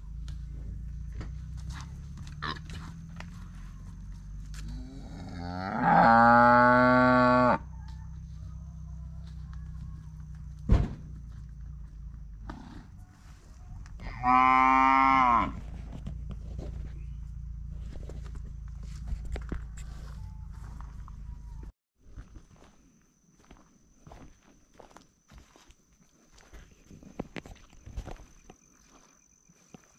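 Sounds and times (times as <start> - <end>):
cattle mooing: 4.7 - 7.6, 14.0 - 15.6.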